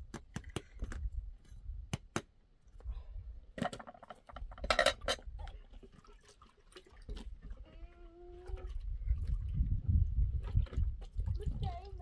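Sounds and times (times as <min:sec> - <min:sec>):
wind on microphone: 0:07.4 - 0:12.0.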